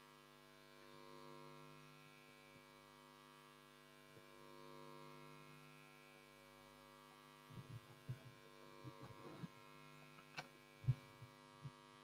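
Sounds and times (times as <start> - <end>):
faint mains hum: 0.0 - 12.0
microphone handling thumps: 7.5 - 9.6, 10.8 - 11.8.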